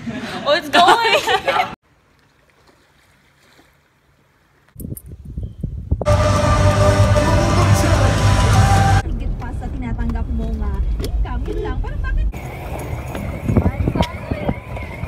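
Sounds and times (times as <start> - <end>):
low rumbling: 5.6 - 15.0
live concert music with crowd: 6.1 - 9.0
moving vehicle noise: 6.1 - 15.0.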